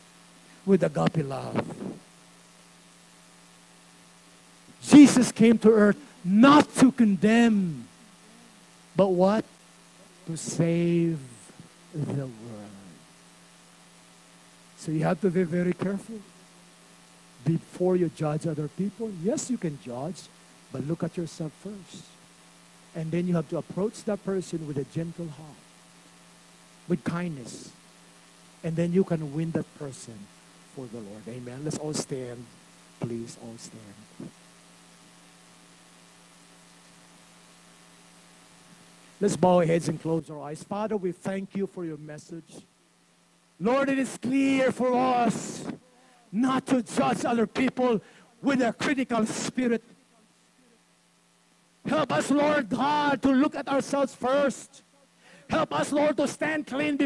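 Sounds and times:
electrical mains hum: 0.0s - 57.0s
light hiss: 0.0s - 57.0s
man's voice: 0.6s - 1.9s, 4.8s - 7.9s, 9.0s - 9.5s, 10.2s - 13.0s, 14.8s - 16.2s, 30.8s - 32.4s, 39.2s - 42.6s, 43.6s - 49.9s, 51.9s - 54.8s, 55.5s - 57.0s.

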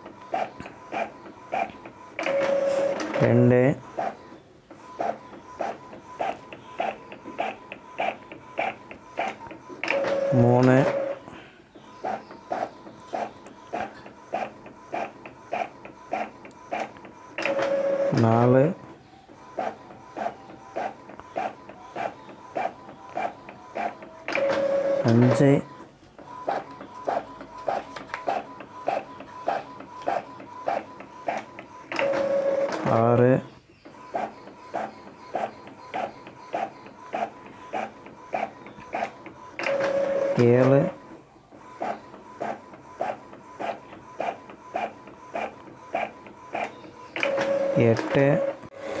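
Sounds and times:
inkjet printer printing: 0.0s - 49.0s.

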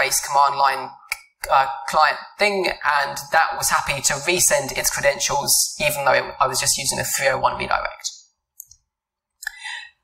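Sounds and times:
person inhaling: 9.4s - 10.0s.

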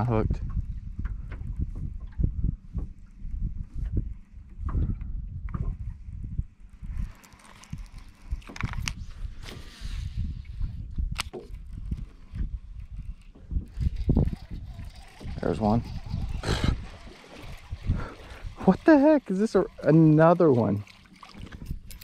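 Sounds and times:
water slapping boat hull: 0.0s - 6.2s, 6.8s - 22.0s
wind rushing over microphone: 0.0s - 18.8s.

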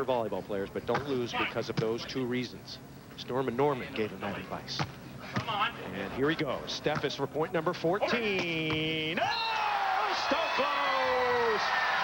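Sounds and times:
stadium crowd noise: 8.2s - 12.0s.

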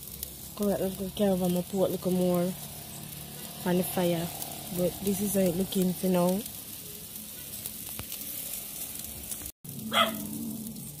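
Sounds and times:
meat sizzling on grill: 0.0s - 11.0s
bark-like call: 9.9s - 10.6s.

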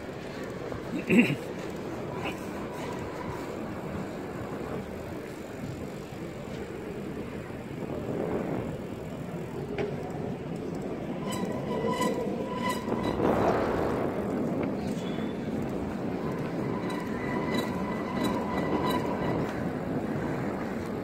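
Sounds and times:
bicycle tyres humming on road: 0.0s - 21.0s
wind on microphone: 2.0s - 21.0s.

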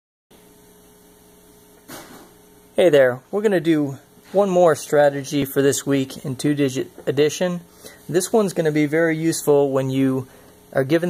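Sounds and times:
electrical mains hum: 0.3s - 11.0s.

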